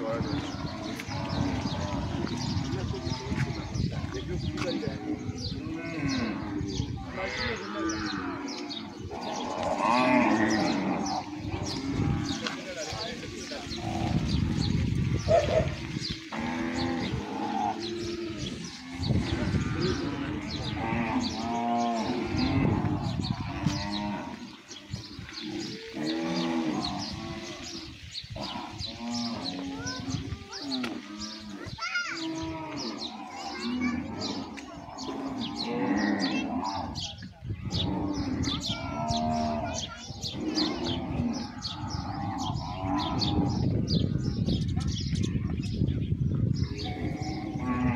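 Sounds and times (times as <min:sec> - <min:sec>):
cattle mooing: 0:04.8 - 0:12.6, 0:16.3 - 0:24.5, 0:25.4 - 0:27.7, 0:28.4 - 0:37.1, 0:46.8 - 0:47.9.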